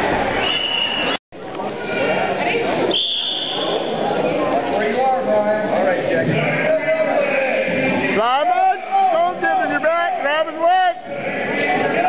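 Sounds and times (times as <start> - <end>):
crowd chatter: 0.0 - 12.0
referee's whistle long blast: 0.4 - 1.2, 2.9 - 3.9.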